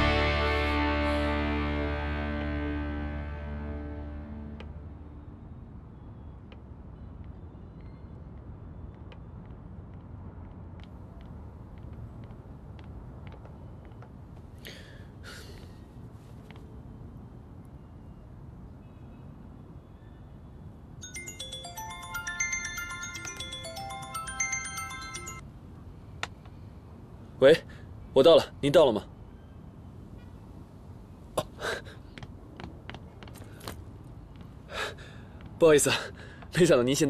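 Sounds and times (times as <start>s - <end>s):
low rumble of city traffic: 0.0s - 37.0s
phone ringtone melody: 21.0s - 25.4s.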